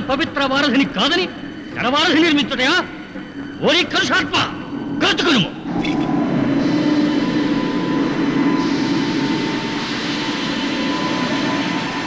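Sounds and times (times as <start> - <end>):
jet-like rushing drone: 2.8 - 12.0.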